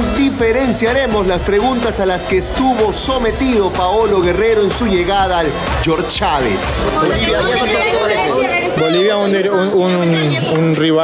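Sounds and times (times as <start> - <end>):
reporters calling out questions: 0.0 - 11.0.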